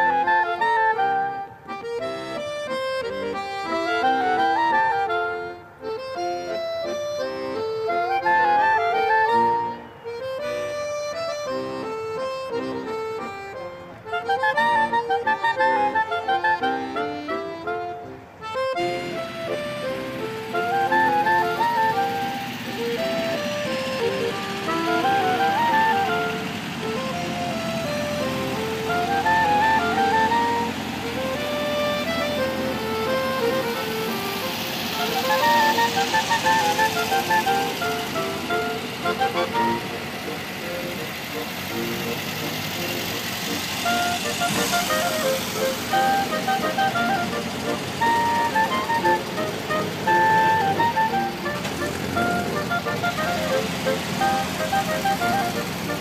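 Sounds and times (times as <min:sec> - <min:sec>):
accordion music: 0:00.0 - 0:56.0
steady background noise: 0:00.0 - 0:56.0.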